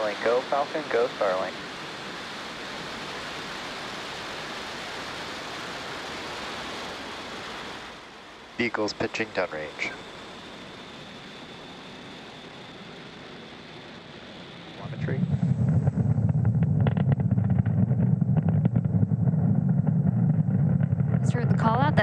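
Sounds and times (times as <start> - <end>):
rocket engines roaring: 0.0 - 22.0.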